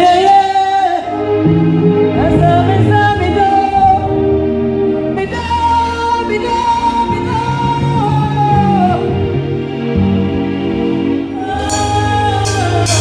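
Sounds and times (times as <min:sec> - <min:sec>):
person singing gospel song: 0:00.0 - 0:09.4, 0:11.3 - 0:13.0
sustained instrumental backing: 0:00.0 - 0:13.0.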